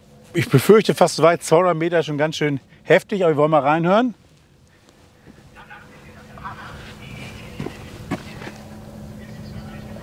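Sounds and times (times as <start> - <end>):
steady low hum: 0.0 - 10.0
distant loudspeaker voice announcement: 5.5 - 8.4, 9.0 - 10.0.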